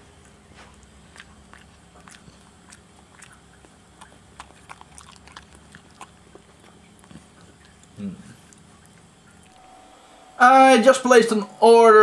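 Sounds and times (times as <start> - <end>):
dog chewing crunching treat: 0.0 - 9.7.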